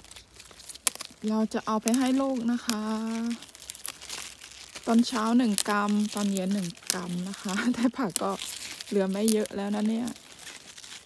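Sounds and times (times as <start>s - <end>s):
leaves crinkling and rustling: 0.0s - 11.0s
woman's voice: 1.2s - 3.4s, 4.9s - 10.2s.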